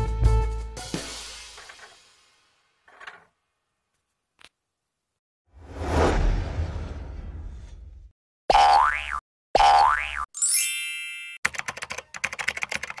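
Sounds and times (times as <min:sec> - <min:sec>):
rapid clicks: 0:11.5 - 0:13.0.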